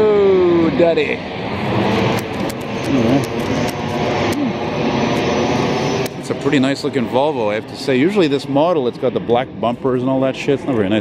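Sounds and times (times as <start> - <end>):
jet engine roar: 0.0 - 11.0.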